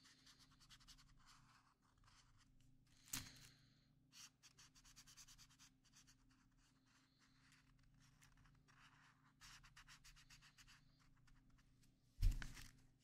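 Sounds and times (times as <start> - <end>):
marker scratching on paper: 0.0 - 2.5, 4.1 - 11.6.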